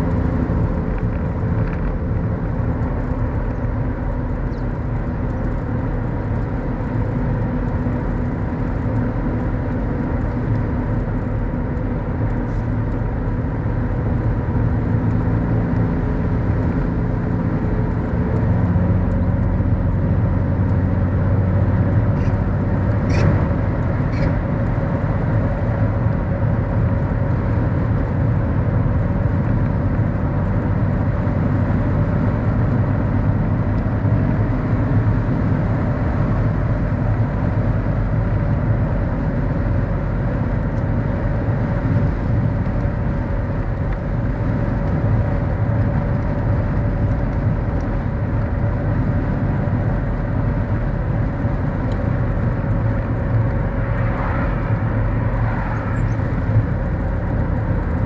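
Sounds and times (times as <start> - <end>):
car engine hum: 0.0 - 58.0
tyre and road noise: 0.0 - 58.0.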